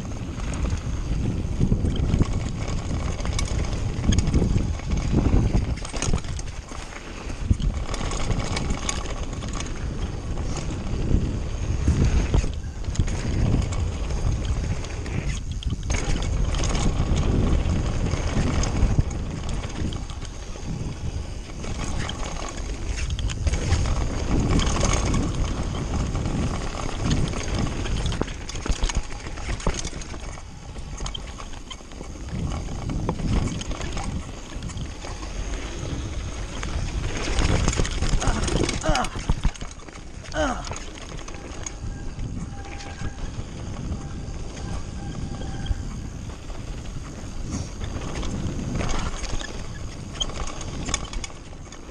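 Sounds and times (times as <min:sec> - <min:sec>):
bike rattling over bumps: 0:00.0 - 0:51.9
tyres rolling over dirt: 0:00.0 - 0:51.9
wind buffeting microphone: 0:00.0 - 0:51.9.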